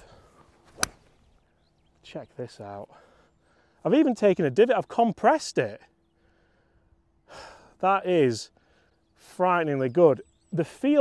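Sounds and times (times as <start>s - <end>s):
golf club striking ball: 0.8s - 1.1s.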